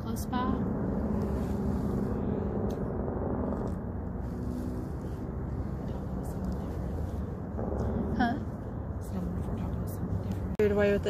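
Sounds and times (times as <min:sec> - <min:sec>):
faint hum: 0:00.0 - 0:11.0
low background rumble: 0:00.0 - 0:11.0.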